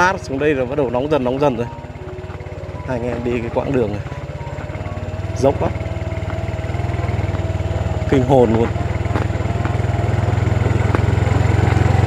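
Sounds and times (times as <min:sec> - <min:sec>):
small motorbike engine running: 0:00.0 - 0:12.0.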